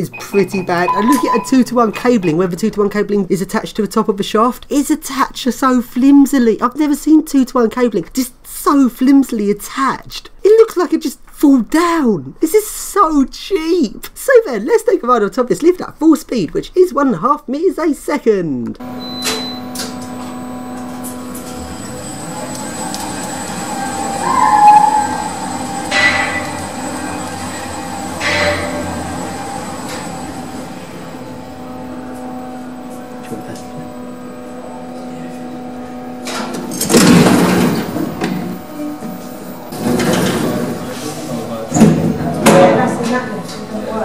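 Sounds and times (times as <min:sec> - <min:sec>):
lift running hum: 0:00.0 - 0:03.2, 0:18.8 - 0:44.0.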